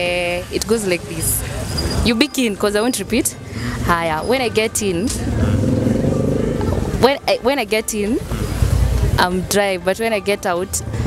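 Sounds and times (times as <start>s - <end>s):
vehicle engine passing: 0.9s - 9.5s.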